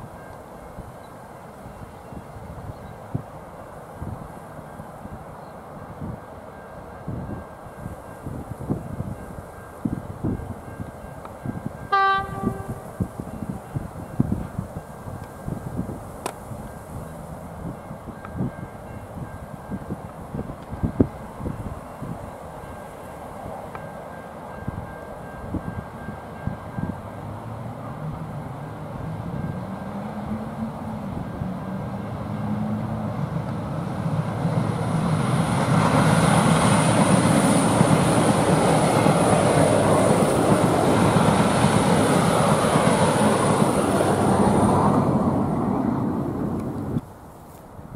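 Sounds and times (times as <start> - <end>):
train engine: 0.0 - 47.9
wheels on rail: 0.0 - 47.9
train horn blast: 11.9 - 13.4.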